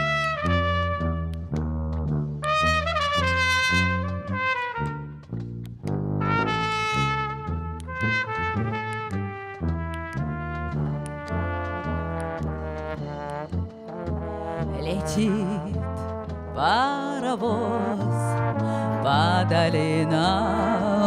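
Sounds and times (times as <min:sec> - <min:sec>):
brass band playing: 0:00.0 - 0:05.4, 0:06.0 - 0:21.0
pulsing low bass notes: 0:00.0 - 0:16.9.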